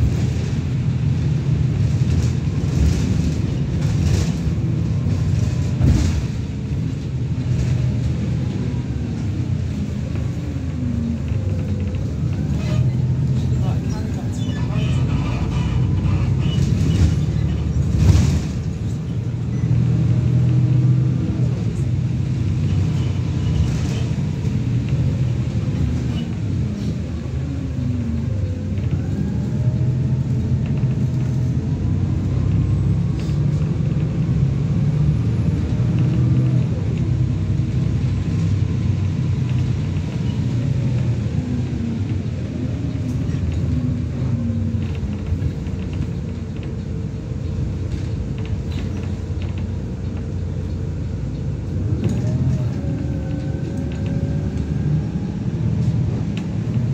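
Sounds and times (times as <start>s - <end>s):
bus engine rising and falling: 0.0s - 56.9s
steady low rumble: 0.0s - 56.9s.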